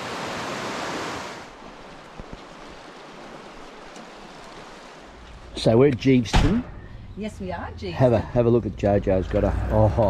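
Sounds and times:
river rushing: 0.0s - 5.9s.

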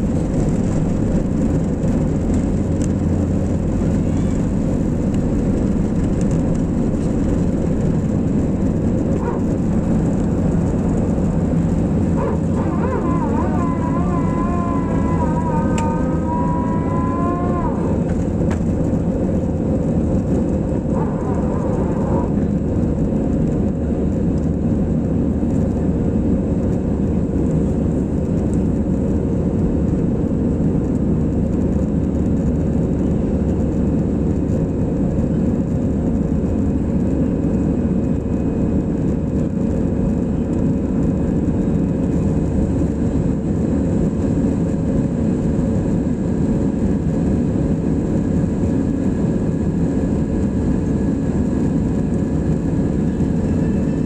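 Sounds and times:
jet engine cabin roar: 0.0s - 54.0s.

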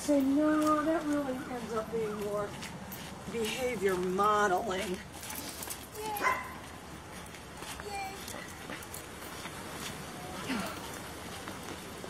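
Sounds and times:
dog barking: 6.2s - 6.6s.

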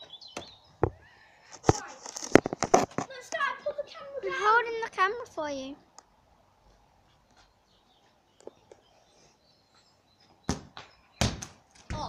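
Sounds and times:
football kicked thud: 10.5s - 12.0s.

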